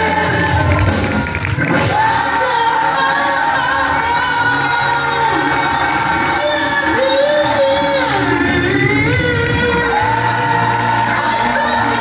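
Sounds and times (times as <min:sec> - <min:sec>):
choir singing long notes: 0:00.0 - 0:12.0.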